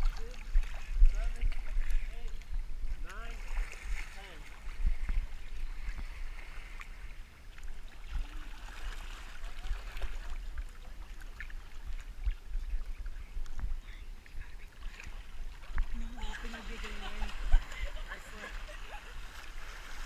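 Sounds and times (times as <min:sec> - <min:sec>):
small splashes and drips: 0:00.0 - 0:18.6
pool water sloshing and lapping: 0:00.0 - 0:20.0.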